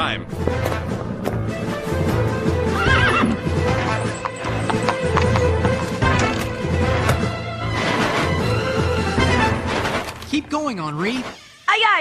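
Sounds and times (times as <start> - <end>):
background music: 0.0 - 11.0
horse hooves clip-clopping: 0.4 - 6.5
horse whinnying: 2.6 - 5.4.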